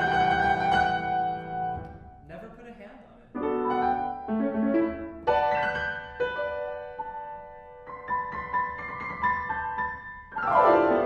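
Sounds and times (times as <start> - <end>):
grand piano chords: 0.0 - 2.6, 3.3 - 11.0.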